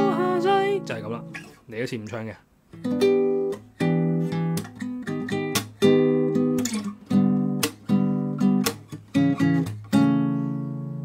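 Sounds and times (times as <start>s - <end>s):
acoustic guitar chords ringing: 0.0s - 1.6s, 2.8s - 11.0s.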